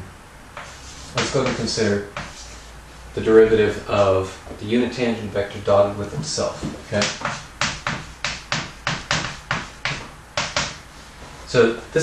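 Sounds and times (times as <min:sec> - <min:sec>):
chalk scratching on chalkboard: 0:00.6 - 0:04.1, 0:06.3 - 0:11.5.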